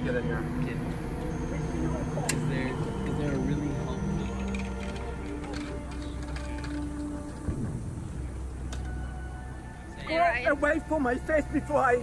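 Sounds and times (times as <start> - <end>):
street traffic rumble: 0.0 - 12.0
voices: 0.0 - 12.0.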